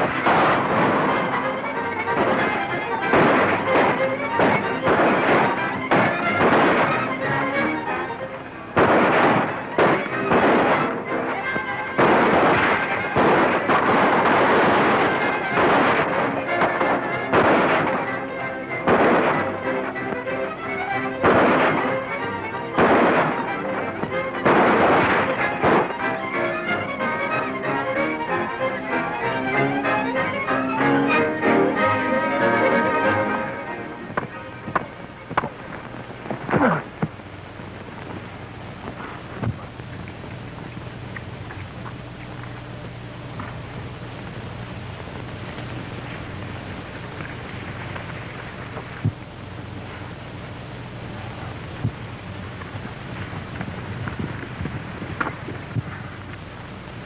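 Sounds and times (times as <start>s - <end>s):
dramatic orchestral music: 0.0s - 35.3s
gunshots: 0.0s - 37.1s.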